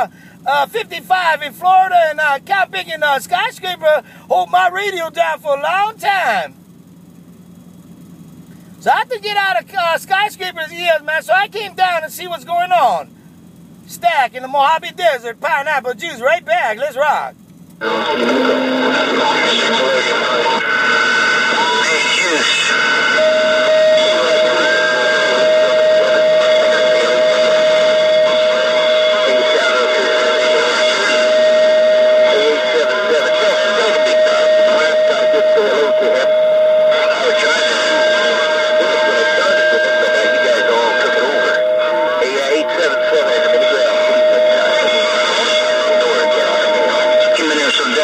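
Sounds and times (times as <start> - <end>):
garbled radio voice: 0.0 - 6.6, 8.8 - 13.1, 13.9 - 48.0
radio static: 17.8 - 48.0
steady whistle tone: 17.8 - 48.0.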